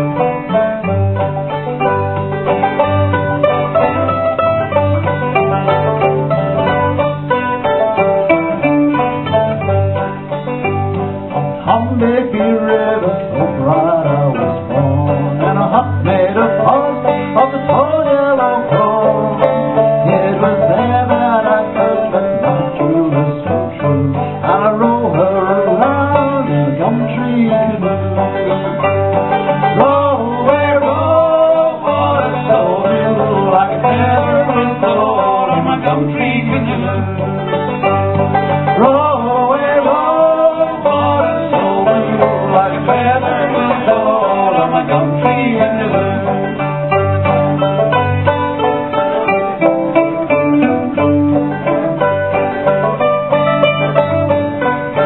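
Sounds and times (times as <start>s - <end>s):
acoustic guitar alternating bass: 0.0s - 55.0s
plucked banjo melody: 0.0s - 55.0s.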